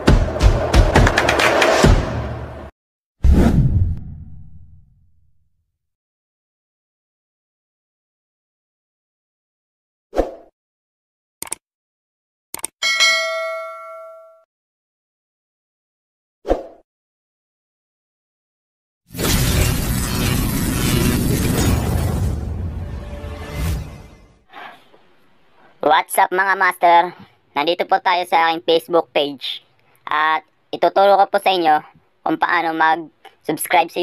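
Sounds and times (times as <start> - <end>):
deep rumble: 3.3 - 5.1.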